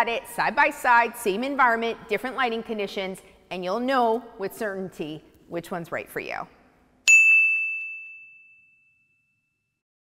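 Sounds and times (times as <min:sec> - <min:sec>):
high bell-like ding: 0:07.0 - 0:09.8.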